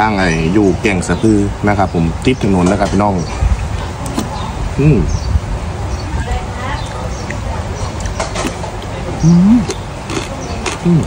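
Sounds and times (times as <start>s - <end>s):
man humming with mouth full: 4.8s - 5.2s, 9.2s - 9.8s
chewing: 7.2s - 11.0s.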